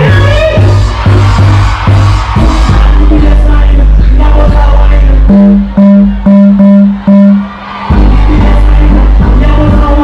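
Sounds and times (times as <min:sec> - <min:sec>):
dancehall music through pa: 0:00.0 - 0:10.0.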